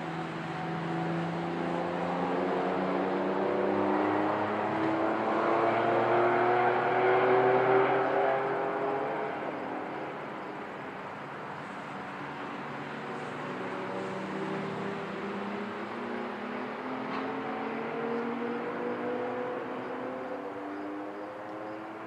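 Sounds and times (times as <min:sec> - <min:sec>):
go-kart engines accelerating: 0:00.0 - 0:22.0.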